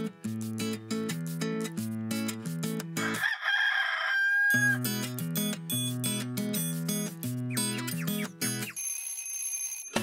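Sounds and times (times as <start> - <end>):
strummed guitar: 0.0 - 3.1.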